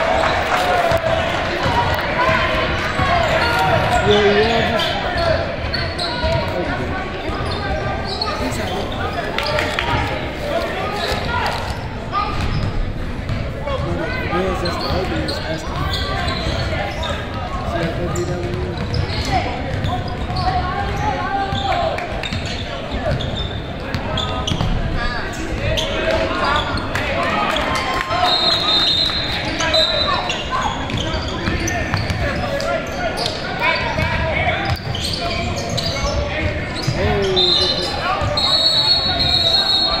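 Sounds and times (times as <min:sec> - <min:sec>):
short high shoe squeals: 0:07.4 - 0:09.7, 0:14.6 - 0:17.4, 0:28.2 - 0:34.0, 0:34.6 - 0:40.0
voices calling out: 0:13.7 - 0:40.0
basketball bouncing on court: 0:18.1 - 0:24.8.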